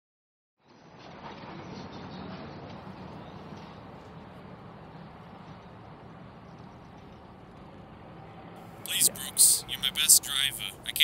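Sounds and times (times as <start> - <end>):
outdoor background noise: 0.6 - 11.0.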